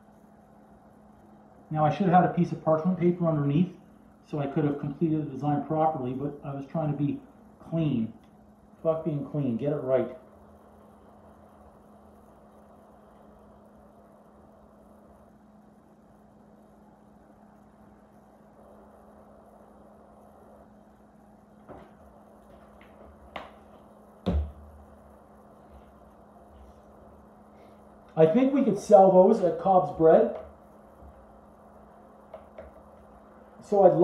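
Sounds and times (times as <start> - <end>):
steady low hum: 0.0 - 34.0
bottle knocking on counter: 24.2 - 24.5.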